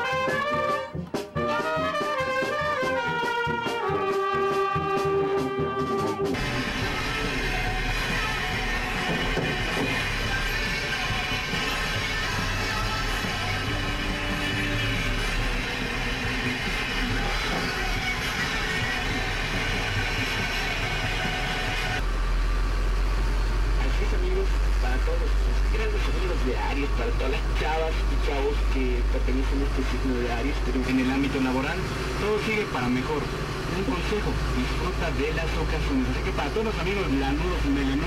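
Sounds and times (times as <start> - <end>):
music: 0.0 - 22.0
car engine rumble: 6.3 - 38.0
steady low hum: 6.4 - 38.0
voices: 23.7 - 38.0.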